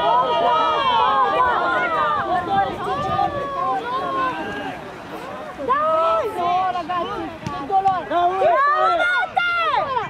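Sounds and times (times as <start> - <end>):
spectators shouting: 0.0 - 10.0.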